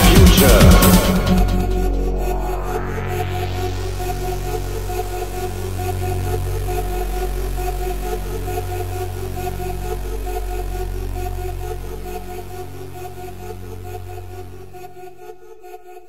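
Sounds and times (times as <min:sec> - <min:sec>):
synthesizer chords: 0:00.0 - 0:14.2
deep bass drone: 0:00.0 - 0:15.0.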